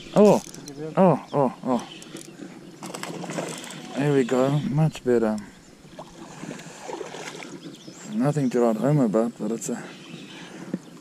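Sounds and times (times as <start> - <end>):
fishing reel cranking: 0.2 - 0.7, 3.2 - 4.0
reel clicking: 0.2 - 0.8, 1.9 - 4.0.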